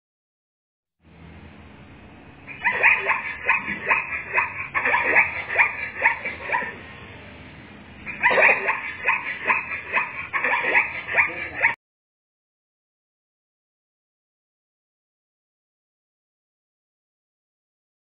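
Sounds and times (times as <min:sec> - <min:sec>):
zebras yelping barks: 0:02.5 - 0:06.9, 0:08.0 - 0:11.8.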